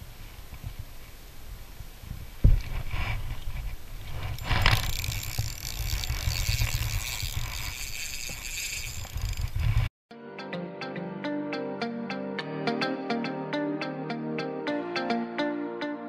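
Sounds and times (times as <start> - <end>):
wind rumbling on microphone: 0.0 - 9.9
reel click: 4.3 - 9.8.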